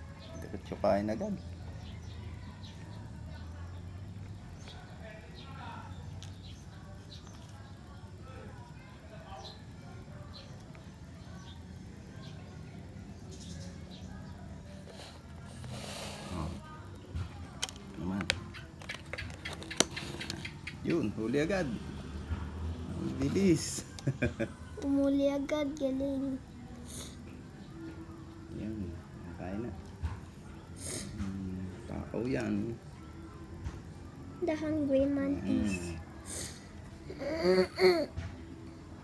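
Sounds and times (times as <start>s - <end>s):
faint voices: 0.0s - 39.0s
breathy hiss: 14.6s - 16.8s, 26.8s - 27.4s, 30.6s - 31.4s, 36.1s - 38.1s.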